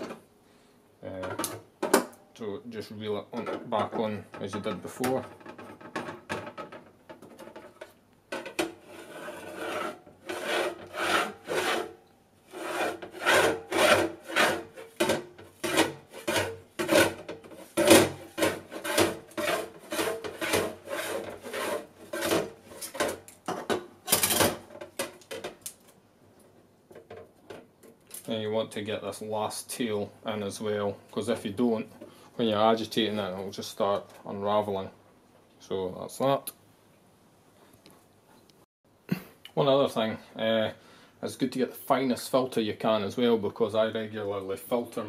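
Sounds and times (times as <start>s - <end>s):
plastic spiral rasping: 8.4s - 23.2s.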